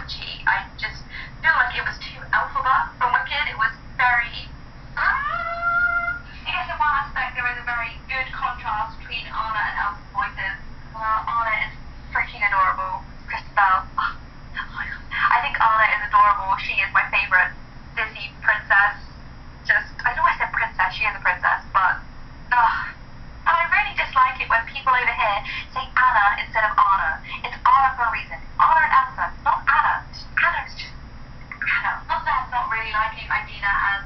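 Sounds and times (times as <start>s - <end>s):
woman talking through phone speaker: 0.0s - 19.0s, 19.7s - 30.9s, 31.5s - 34.0s.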